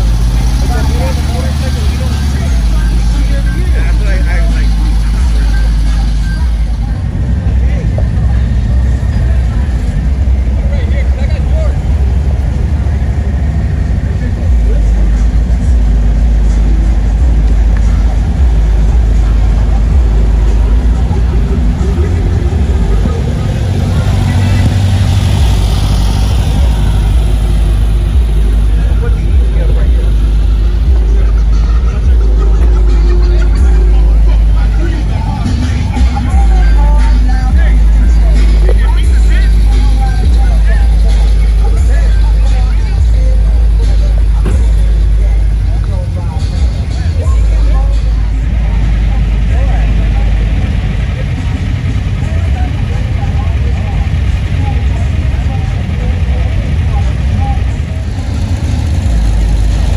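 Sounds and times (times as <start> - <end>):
air-cooled engines passing: 0.0 - 59.9
background voices: 0.0 - 59.9
steady low rumble: 0.0 - 59.9.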